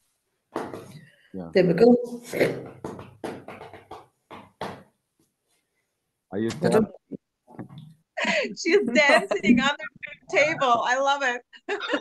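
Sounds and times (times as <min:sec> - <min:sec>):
fingers drumming on tabletop: 0:02.6 - 0:05.0.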